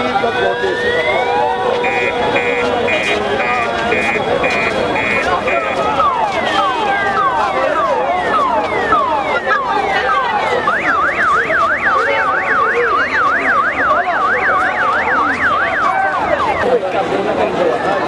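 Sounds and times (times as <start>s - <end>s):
electronic vehicle siren: 0.0s - 16.8s
crowd noise: 0.0s - 18.0s.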